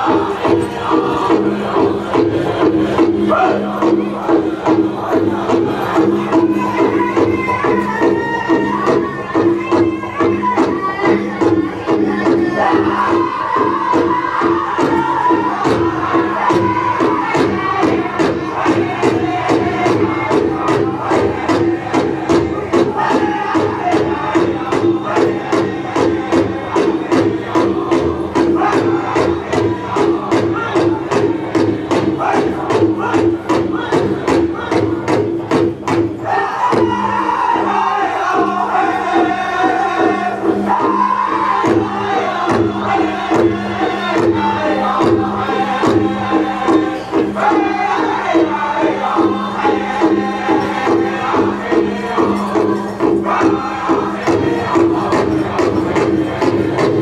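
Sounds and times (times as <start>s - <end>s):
group singing in unison: 0.0s - 35.3s, 35.9s - 57.0s.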